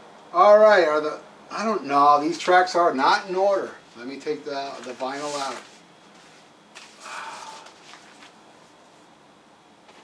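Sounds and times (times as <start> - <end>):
soft paper rustle: 4.7 - 9.1
vinyl record sliding out of sleeve: 4.8 - 7.0.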